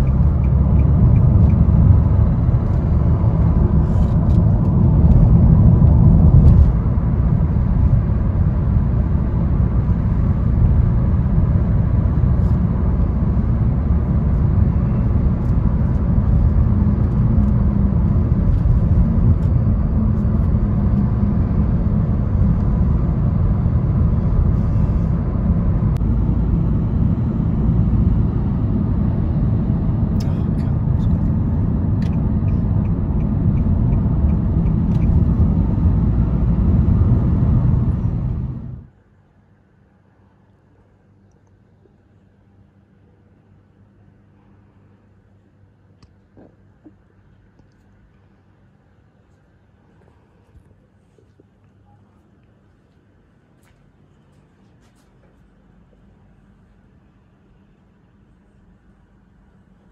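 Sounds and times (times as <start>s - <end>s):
road rumble inside moving car: 0.0s - 39.1s.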